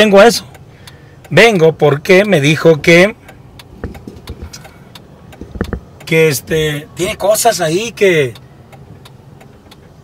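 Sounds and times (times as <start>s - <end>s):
car cabin rumble: 3.4s - 6.8s
soft knocks: 3.8s - 4.6s, 5.4s - 5.9s.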